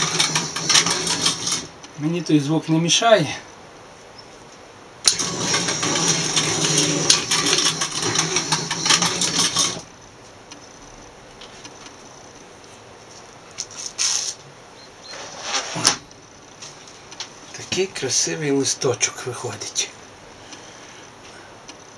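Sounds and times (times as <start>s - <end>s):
roller machine motor hum and clatter: 0.0s - 1.8s, 5.0s - 10.6s
short rustles: 12.7s - 17.7s.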